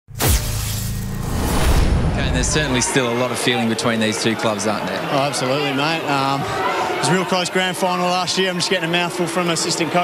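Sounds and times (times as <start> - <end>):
sudden hit: 0.1 - 2.9
low bass drone: 0.2 - 2.9.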